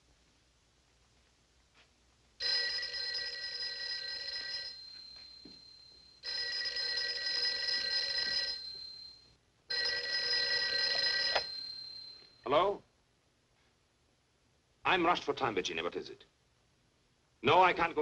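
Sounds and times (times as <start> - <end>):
telephone bell ringing: 2.4 - 12.5.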